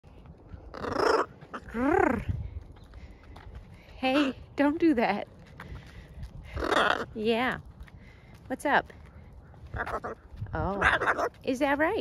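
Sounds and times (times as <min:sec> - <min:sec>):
macaw squawking: 0:00.8 - 0:01.7, 0:10.8 - 0:11.4.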